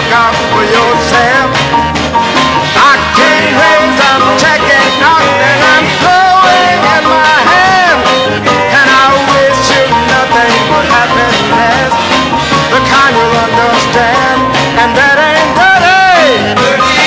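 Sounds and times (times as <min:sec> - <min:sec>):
soul music with singer and band: 0:00.0 - 0:17.0.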